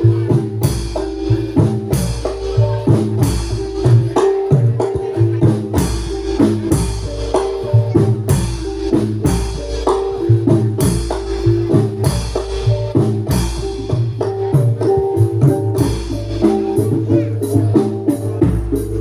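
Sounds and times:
sustained metallophone notes: 0.0s - 19.0s.

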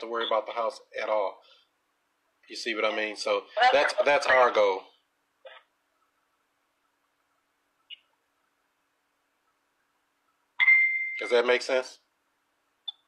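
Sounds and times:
person speaking: 2.4s - 5.0s.

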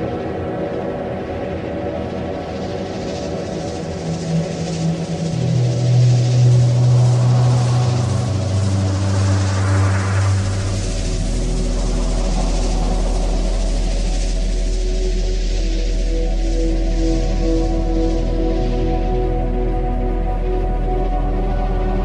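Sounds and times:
sustained synth drones: 0.0s - 22.0s
rising noise sweep: 3.1s - 19.6s
deep sub-bass drone: 3.8s - 22.0s.

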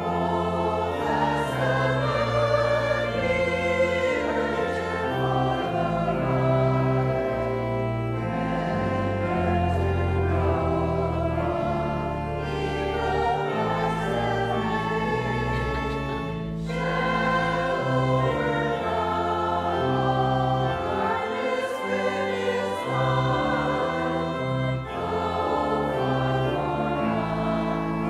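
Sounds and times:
choir and congregation singing a hymn: 0.0s - 28.0s
organ notes: 0.0s - 28.0s.

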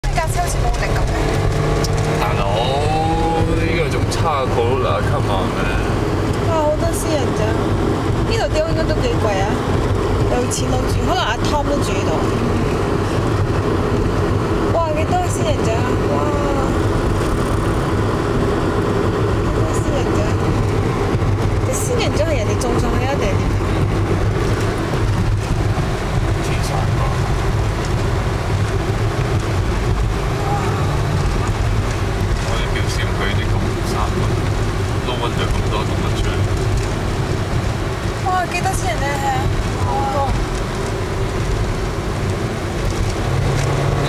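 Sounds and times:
car road and engine drone: 0.0s - 44.0s.

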